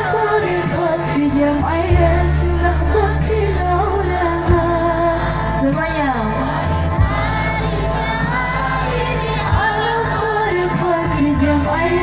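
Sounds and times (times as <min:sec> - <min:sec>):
deep sustained bass line: 0:00.0 - 0:12.0
woman singing: 0:00.0 - 0:12.0.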